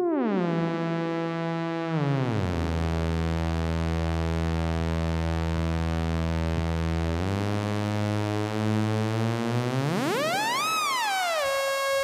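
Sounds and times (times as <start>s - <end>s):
buzzy synth tone sweeping in pitch: 0.0s - 12.0s.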